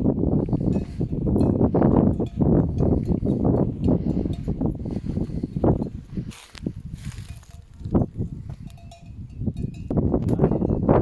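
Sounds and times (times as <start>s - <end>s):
sheep bells clinking: 0.0s - 11.0s
wind buffeting microphone: 0.0s - 11.0s.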